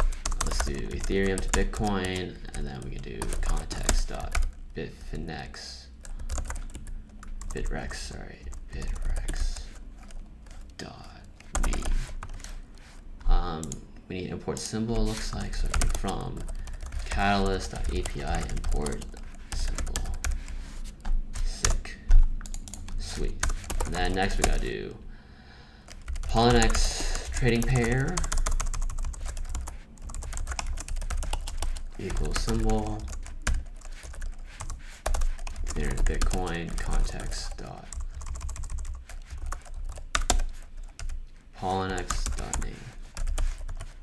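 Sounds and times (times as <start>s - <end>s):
computer keyboard keystrokes: 0.0s - 2.2s, 6.0s - 7.6s, 15.2s - 20.4s, 21.0s - 24.6s, 25.9s - 41.2s.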